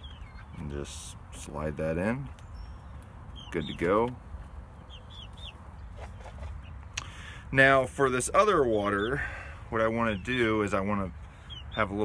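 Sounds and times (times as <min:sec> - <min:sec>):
chickens calling faintly: 0:00.0 - 0:12.0.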